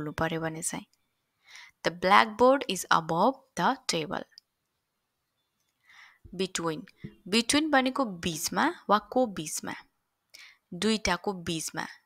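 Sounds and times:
faint breath: 0:01.3 - 0:01.8, 0:05.8 - 0:06.3, 0:10.3 - 0:10.7.

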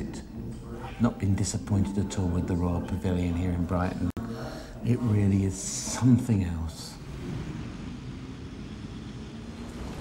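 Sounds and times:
road traffic rumble: 0:07.0 - 0:10.0.

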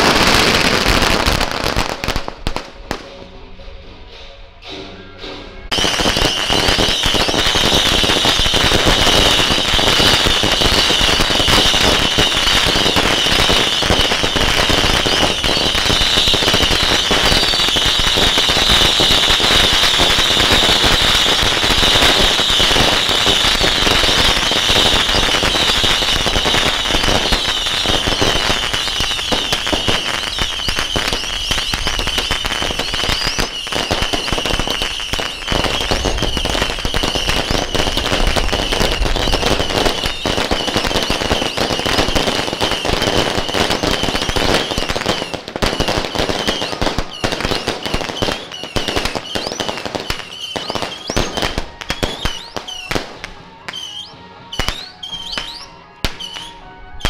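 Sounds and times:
firecrackers crackling: 0:00.0 - 0:03.2, 0:05.7 - 0:57.0.

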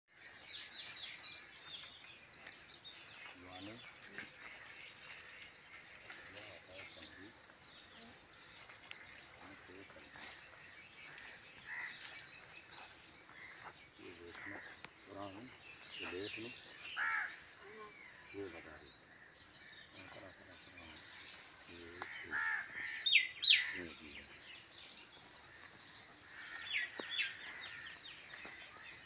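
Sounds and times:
small birds chirping: 0:00.1 - 0:29.0
faint voices: 0:03.1 - 0:12.9.

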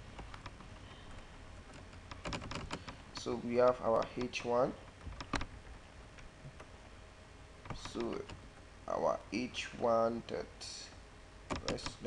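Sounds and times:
computer keyboard typing: 0:00.2 - 0:03.0, 0:03.9 - 0:05.8, 0:07.7 - 0:08.6, 0:11.5 - 0:12.0.

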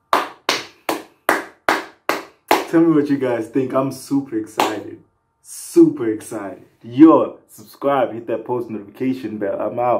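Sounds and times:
person clapping hands slowly: 0:00.0 - 0:02.8, 0:04.6 - 0:04.8.

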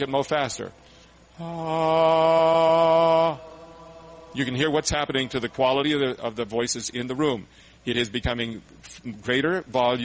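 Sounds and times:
group of voices singing ah: 0:01.4 - 0:06.2.

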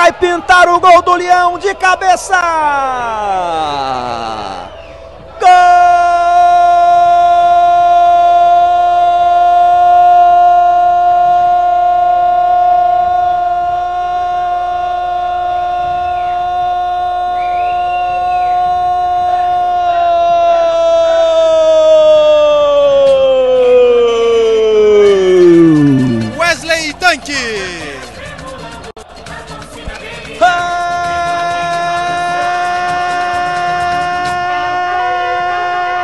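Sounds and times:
commentator shouting long held note: 0:22.9 - 0:26.9.

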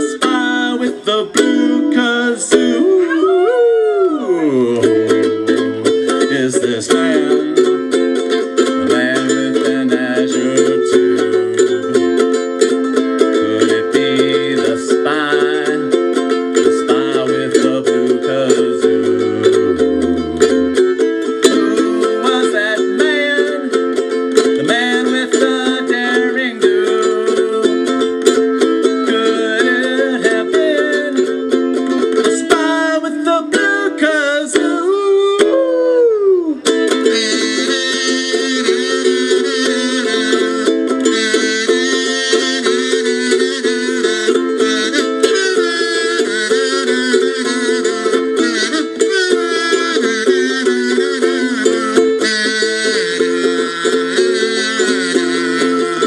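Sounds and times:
ukulele strumming: 0:00.0 - 0:03.3, 0:04.4 - 0:56.0
wordless wavering melody: 0:07.2 - 0:13.8, 0:16.6 - 0:22.4
low bass notes: 0:18.5 - 0:21.3.

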